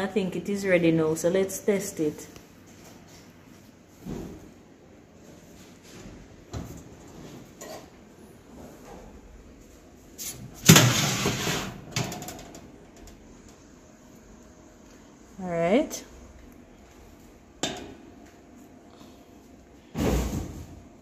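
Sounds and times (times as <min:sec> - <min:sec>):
metal oven rack pulled out: 0:10.6 - 0:12.2.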